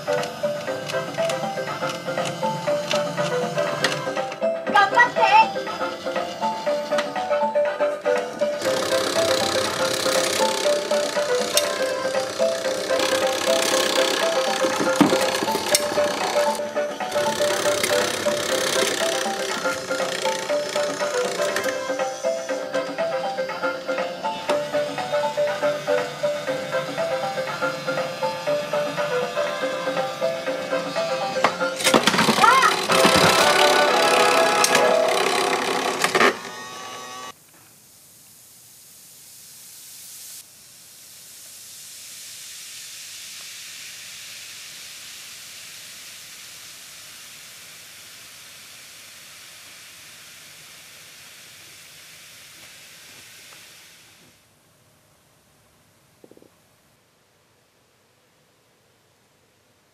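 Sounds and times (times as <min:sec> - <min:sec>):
background music: 0:00.0 - 0:37.3.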